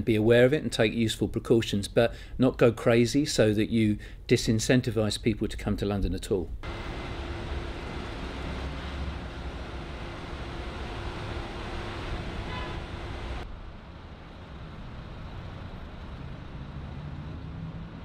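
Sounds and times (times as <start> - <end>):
constant low hum: 5.2 - 18.0
road traffic rumble: 6.6 - 18.0.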